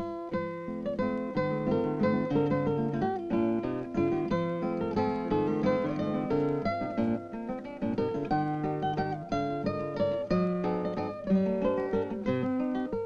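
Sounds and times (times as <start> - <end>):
acoustic guitar music: 0.0 - 13.0.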